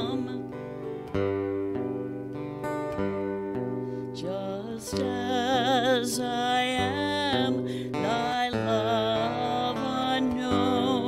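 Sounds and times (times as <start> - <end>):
person singing: 0.0 - 1.6, 4.0 - 11.0
acoustic guitar strumming: 0.0 - 11.0.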